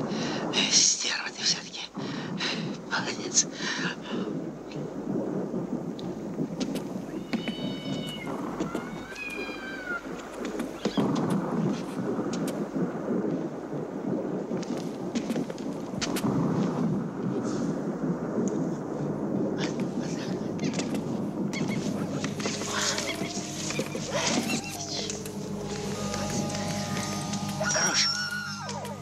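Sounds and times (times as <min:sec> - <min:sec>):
constant low rumbling: 0:00.0 - 0:29.0
cat meowing: 0:07.1 - 0:10.1, 0:22.5 - 0:25.4, 0:26.1 - 0:28.9.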